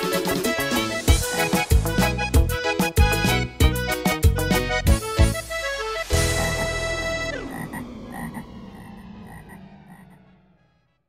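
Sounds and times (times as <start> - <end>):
frog croaking effect: 6.2 - 10.8.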